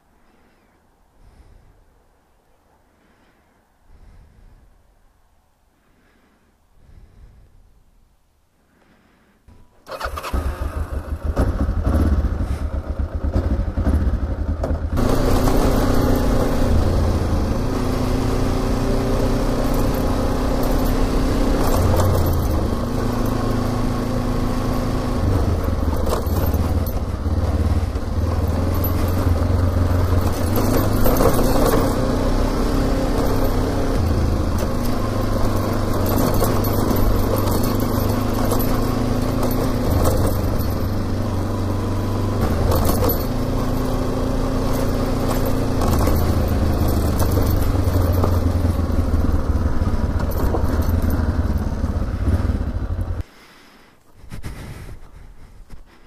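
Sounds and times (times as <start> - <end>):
wind and tyre noise: 0.0 - 53.3, 54.0 - 56.0
motorcycle engine: 9.8 - 53.3.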